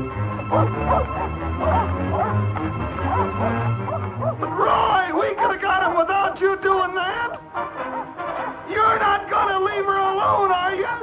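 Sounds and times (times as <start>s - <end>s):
background music: 0.0s - 11.0s
dog yelping: 0.5s - 4.7s, 5.3s - 5.7s.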